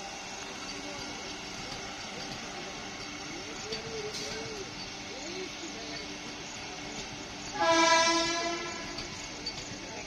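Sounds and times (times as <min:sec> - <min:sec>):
train coaches rumbling past: 0:00.0 - 0:10.0
train horn blast: 0:07.5 - 0:09.2.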